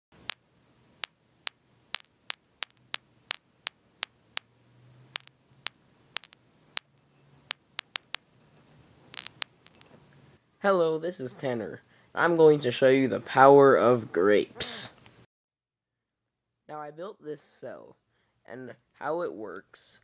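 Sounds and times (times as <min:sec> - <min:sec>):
sharp clicks: 0:00.1 - 0:00.4, 0:01.0 - 0:04.5, 0:05.2 - 0:08.3, 0:09.1 - 0:10.0.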